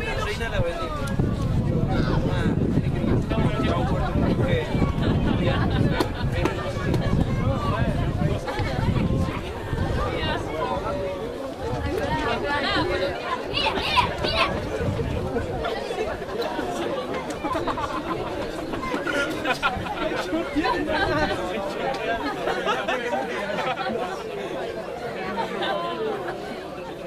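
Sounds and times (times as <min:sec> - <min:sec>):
indistinct chatter of spectators: 0:00.0 - 0:27.0.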